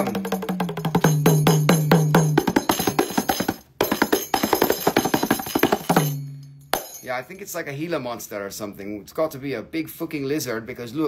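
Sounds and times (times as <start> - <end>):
drum head ringing low: 0.0 - 7.1.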